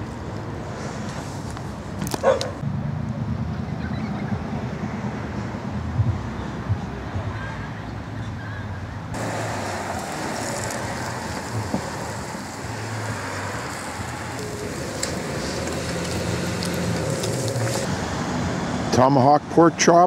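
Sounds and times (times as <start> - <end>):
distant traffic rumble: 0.0 - 20.0
barbecue clicks and crackles: 9.2 - 17.9.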